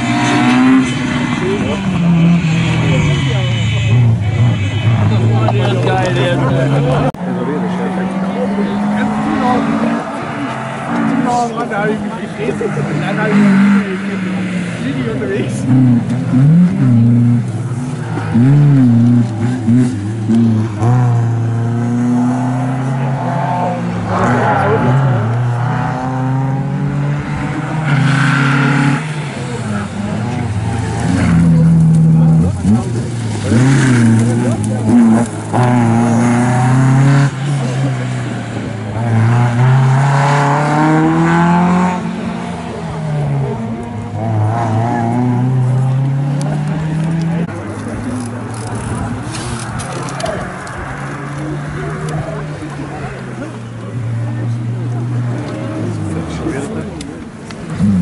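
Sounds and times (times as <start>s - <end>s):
rally car engines revving: 0.0s - 58.0s.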